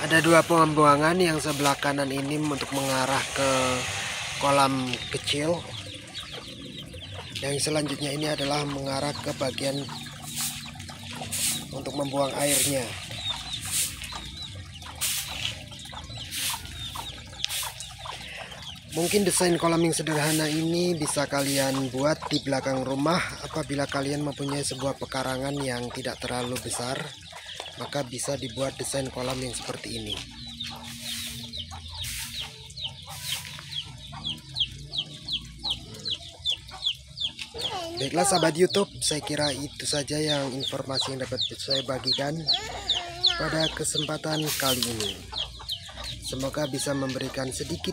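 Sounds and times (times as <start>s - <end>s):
bird peeping: 0.0s - 25.7s, 26.8s - 47.9s
chickens clucking: 0.0s - 47.9s.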